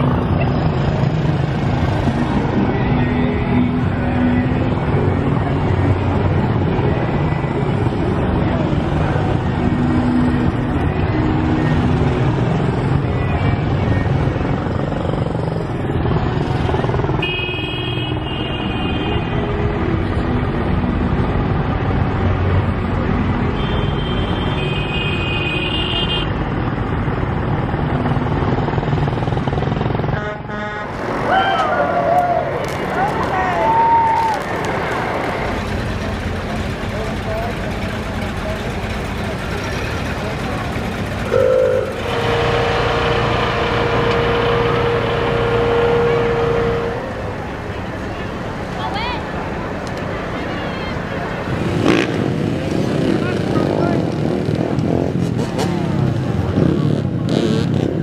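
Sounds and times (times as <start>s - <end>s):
motorcycle engines running: 0.0s - 58.0s
high horn: 17.2s - 19.4s, 23.5s - 26.3s, 30.1s - 31.0s, 41.2s - 47.5s
voices: 31.2s - 54.2s.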